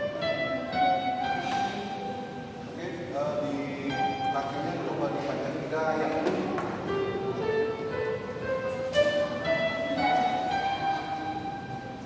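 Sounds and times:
electronic keyboard note: 6.8s - 12.0s.

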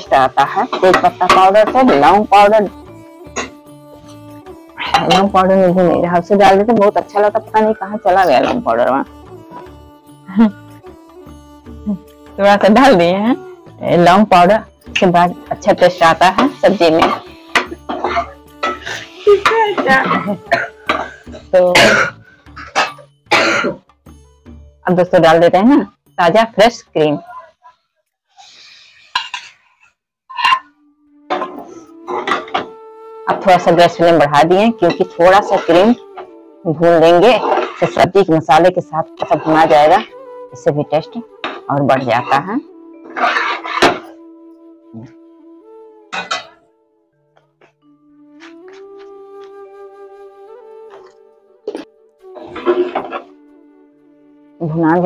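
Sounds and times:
spatula scraping metal pan: 0.0s - 5.4s, 7.2s - 8.9s, 15.0s - 23.0s, 29.0s - 32.7s, 33.3s - 36.4s, 37.0s - 38.3s, 39.0s - 40.1s, 41.4s - 44.2s, 46.2s - 46.6s, 51.7s - 53.3s
background music: 0.0s - 29.5s, 30.3s - 55.0s
soft flute music: 38.1s - 55.0s.

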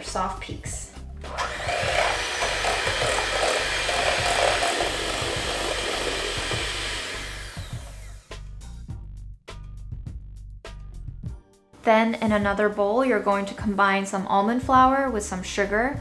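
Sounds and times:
electric hand mixer whipping: 1.3s - 8.3s.

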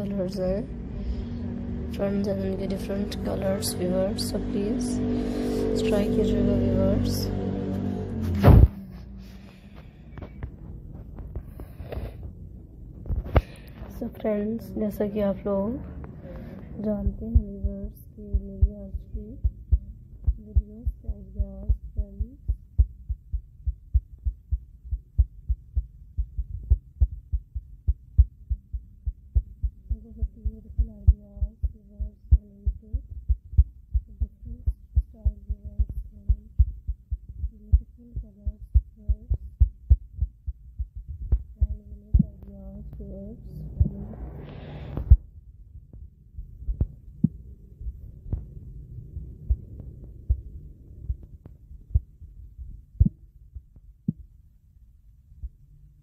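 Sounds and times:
deep thumping beat music: 0.0s - 0.7s, 1.4s - 5.1s, 5.7s - 8.8s, 16.8s - 44.1s, 45.0s - 54.2s
faint higher notes: 0.0s - 9.2s.

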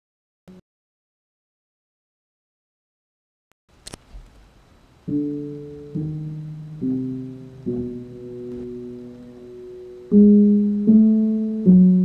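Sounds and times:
held keyboard chord: 5.1s - 12.0s.

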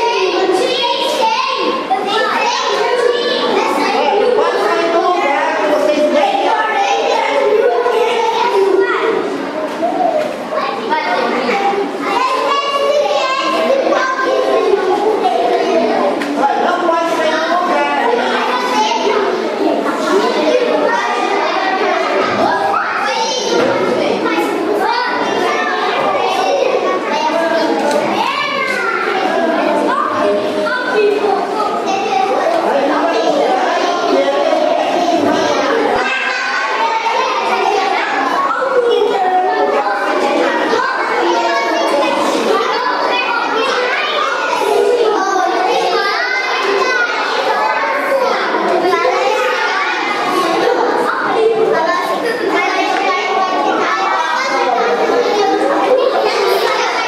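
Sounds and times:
children talking and shouting: 0.0s - 57.0s
children's high calls: 0.0s - 57.0s.

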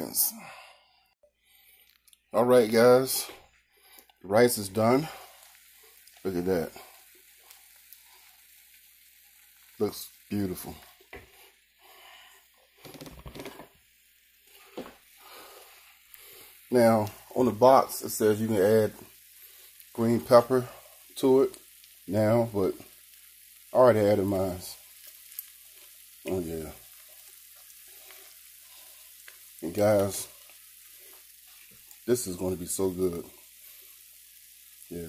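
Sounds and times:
food sizzling in a skillet: 2.4s - 35.0s.

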